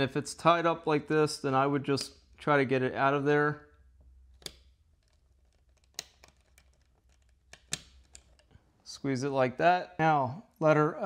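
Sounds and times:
wire clicking in screw terminal: 0:04.2 - 0:08.6.

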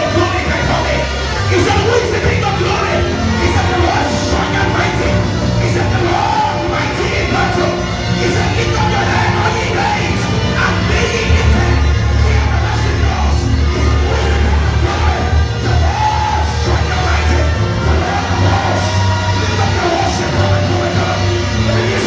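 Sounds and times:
church worship music: 0:00.0 - 0:22.0
man singing into a microphone: 0:00.0 - 0:22.0.

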